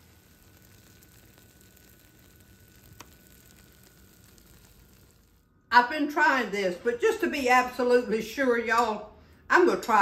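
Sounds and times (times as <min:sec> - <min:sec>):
food sizzling: 0:00.0 - 0:05.5
small ticks: 0:00.2 - 0:05.1.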